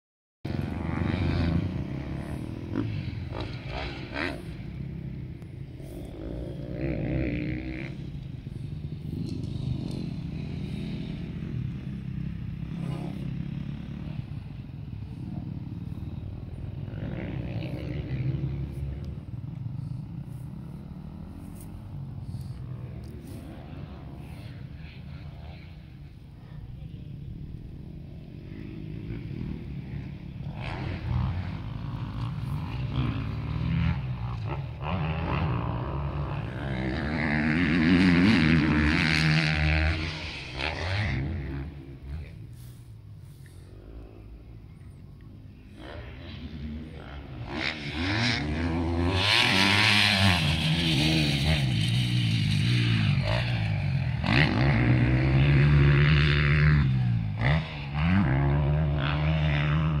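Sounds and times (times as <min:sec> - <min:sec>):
motorcycle engines revving: 0:00.5 - 1:00.0.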